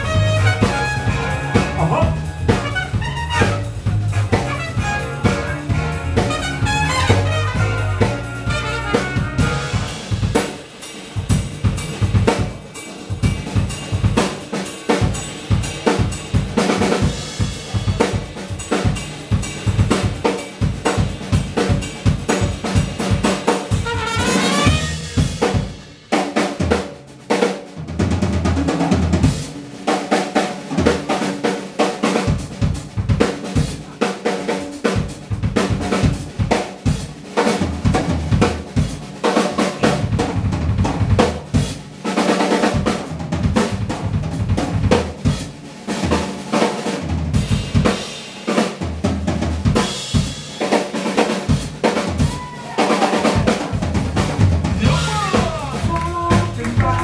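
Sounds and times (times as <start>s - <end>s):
low bass notes: 0.0s - 10.0s, 53.8s - 57.0s
band instruments: 0.0s - 57.0s
drum kit playing: 0.0s - 57.0s.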